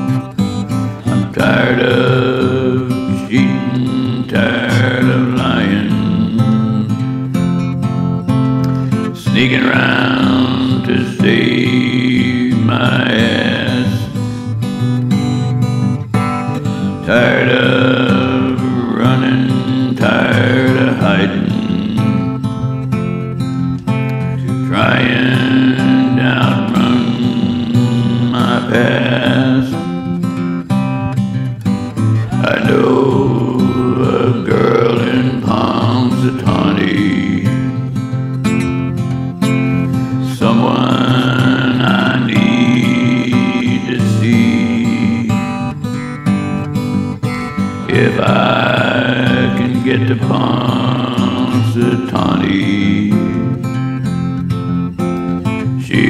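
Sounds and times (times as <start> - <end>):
acoustic guitar accompaniment: 0.0 - 56.0
man singing long notes: 0.8 - 7.6, 8.8 - 14.5, 16.6 - 22.9, 24.4 - 30.2, 32.0 - 38.2, 39.8 - 46.0, 47.8 - 53.8, 55.6 - 56.0.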